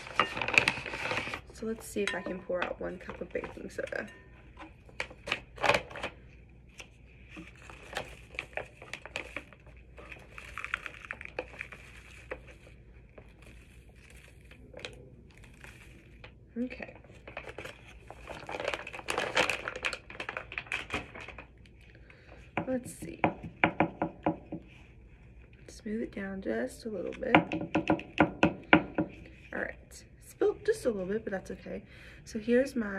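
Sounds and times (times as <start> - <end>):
packaging crinkling and rustling: 0.0 - 1.6, 3.0 - 22.8.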